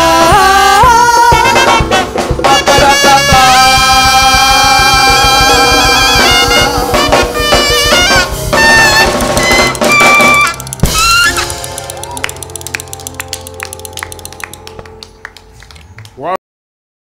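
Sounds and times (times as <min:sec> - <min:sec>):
live band music: 0:00.0 - 0:15.9
alto saxophone phrase: 0:00.9 - 0:10.7.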